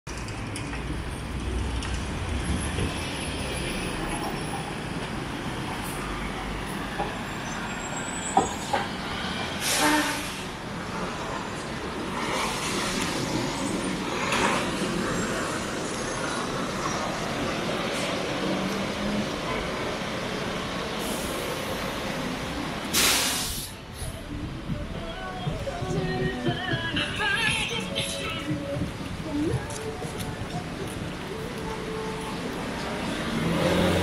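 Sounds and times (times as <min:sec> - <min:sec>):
passing vehicles: 0:00.1 - 0:34.0
burst of hiss: 0:22.9 - 0:23.8
low engine rumble: 0:23.6 - 0:33.6.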